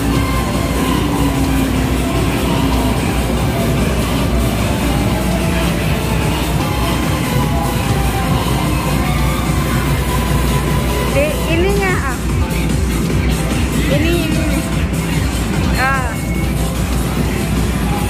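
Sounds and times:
din of game machines: 0.0s - 18.0s
electronic game music: 0.0s - 18.0s
game motorcycle engine sounds: 0.0s - 18.0s.

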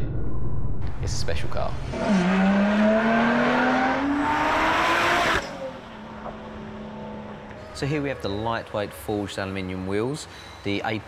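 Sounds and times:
car engine accelerating: 1.8s - 7.6s.

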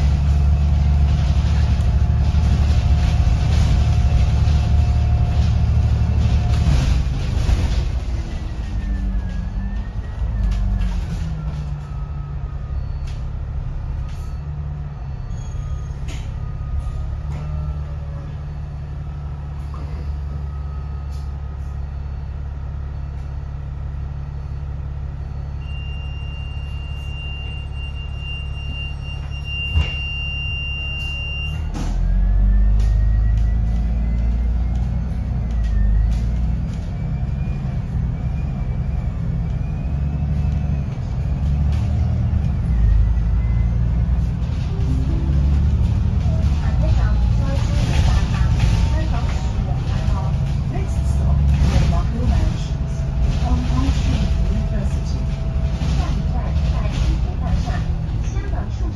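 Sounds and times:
bus diesel engine idling: 0.0s - 58.9s.

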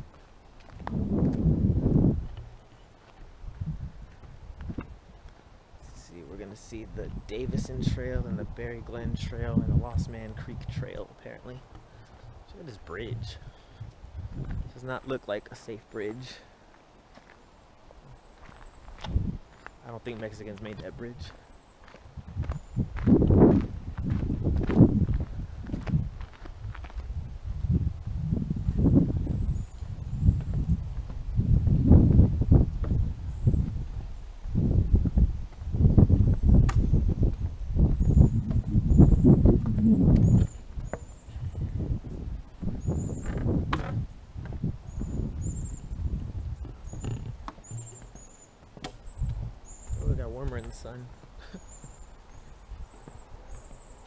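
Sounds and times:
camera rumbling and knocking: 42.6s - 44.6s, 46.6s - 50.6s.

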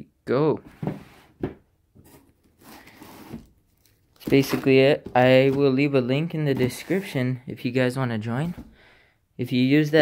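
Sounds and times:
tissue paper and cardboard rustling: 6.5s - 7.2s.

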